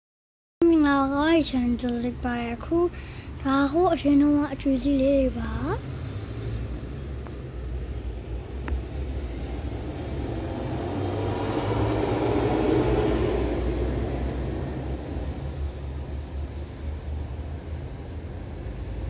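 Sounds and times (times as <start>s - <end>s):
steady low rumble: 0.6s - 19.0s
vehicle passing by: 4.6s - 19.0s.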